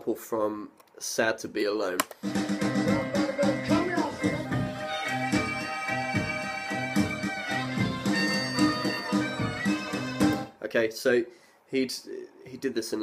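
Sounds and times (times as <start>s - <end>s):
blues harmonica wailing: 2.2s - 10.5s
rhythm backing: 2.2s - 10.5s.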